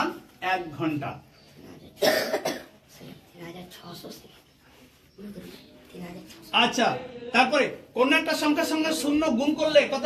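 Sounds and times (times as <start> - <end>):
man coughing: 2.0 - 2.8.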